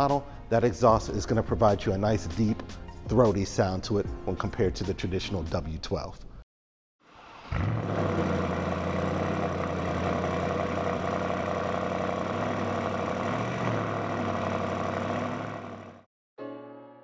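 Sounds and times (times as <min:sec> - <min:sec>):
car engine idling deep: 0:07.6 - 0:16.0.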